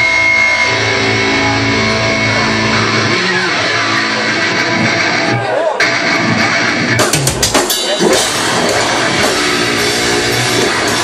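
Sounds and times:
metalcore band playing live: 0.0s - 11.0s.

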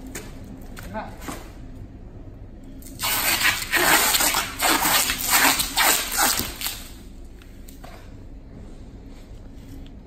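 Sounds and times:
packing tape pulled off roll: 2.8s - 7.0s.

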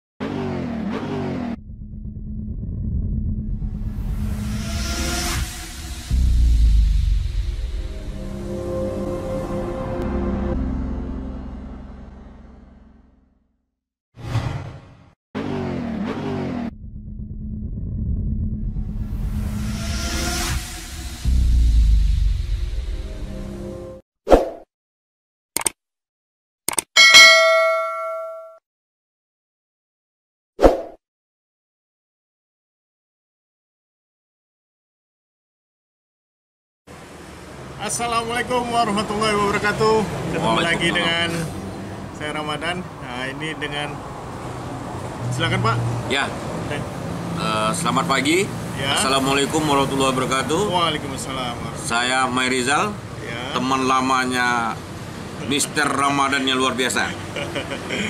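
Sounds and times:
low rumble: 1.6s - 9.0s, 21.2s - 23.6s
notification bell ding: 27.0s - 28.6s.

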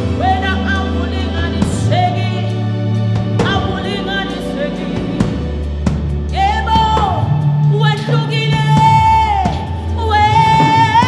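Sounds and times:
woman singing into a microphone: 0.0s - 5.6s, 6.3s - 11.0s
low sustained backing: 0.0s - 11.0s.

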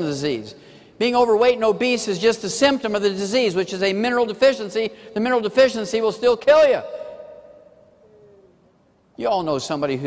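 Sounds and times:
man's voice: 0.0s - 7.5s, 9.2s - 10.0s.

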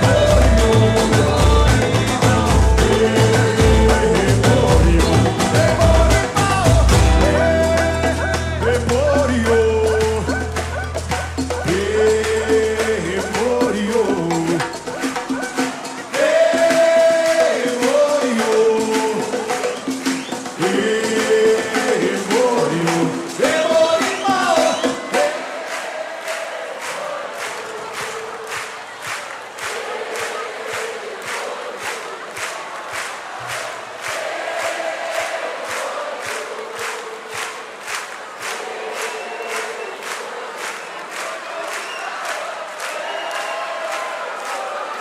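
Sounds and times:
group singing chorus: 0.0s - 45.0s
hand claps: 0.0s - 45.0s.

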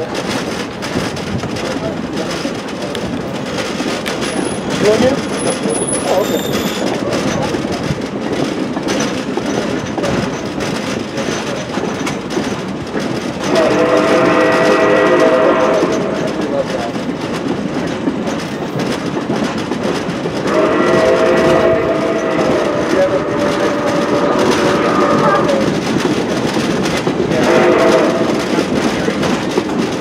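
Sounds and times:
train wheels clicking over rail joints: 0.0s - 30.0s
train horn chord blasts: 13.5s - 16.3s, 20.4s - 25.6s, 27.4s - 28.4s.

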